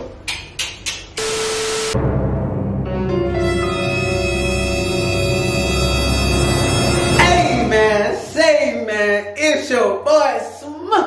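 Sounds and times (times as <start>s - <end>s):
deep ominous music drone: 2.0s - 8.3s.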